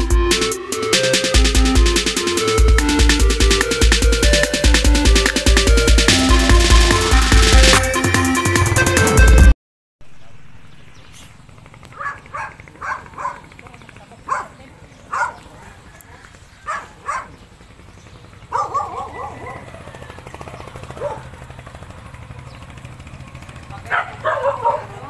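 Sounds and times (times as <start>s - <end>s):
dog barking: 11.9s - 13.5s, 14.3s - 17.4s, 18.5s - 20.0s, 20.9s - 21.4s, 23.8s - 25.0s.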